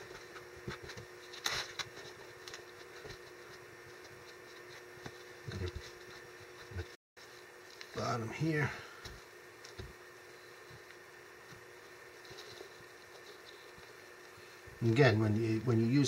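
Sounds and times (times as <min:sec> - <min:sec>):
low room hum: 0:00.0 - 0:16.0.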